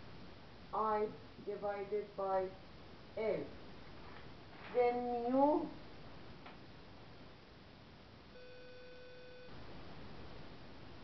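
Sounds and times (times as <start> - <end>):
faint steady beep: 8.3 - 9.7.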